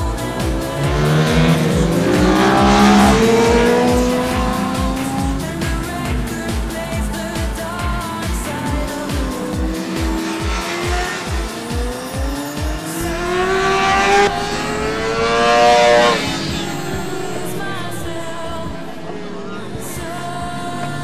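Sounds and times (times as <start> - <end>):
music with thumping beat: 0.0 - 17.4
motorcycle engine revving: 0.0 - 21.0.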